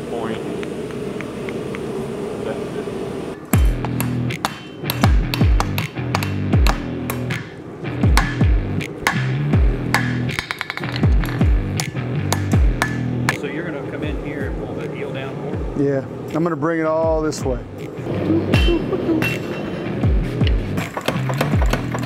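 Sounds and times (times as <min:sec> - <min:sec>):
hammer striking metal on anvil: 0:03.6 - 0:07.5, 0:09.0 - 0:09.3, 0:09.9 - 0:10.9, 0:12.3 - 0:13.4, 0:18.6 - 0:19.8
music with deep beat: 0:03.6 - 0:13.4, 0:17.0 - 0:22.0.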